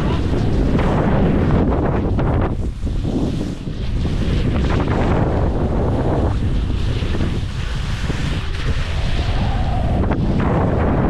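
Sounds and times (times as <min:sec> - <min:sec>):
skis sliding through snow: 0:00.0 - 0:11.0
wind buffeting microphone: 0:00.0 - 0:11.0.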